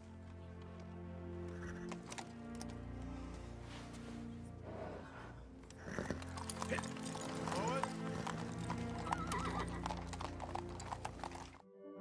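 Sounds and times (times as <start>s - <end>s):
horse hooves clopping: 0.0s - 4.4s, 5.0s - 11.6s
film score music: 0.0s - 12.0s
horse whinnying: 1.5s - 2.3s, 4.7s - 11.6s.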